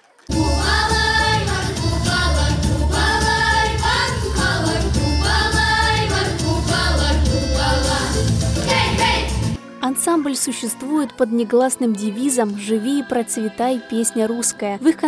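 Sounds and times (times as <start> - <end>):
girls singing together: 0.3 - 9.4
amplified accompaniment heavy bass: 0.3 - 9.6.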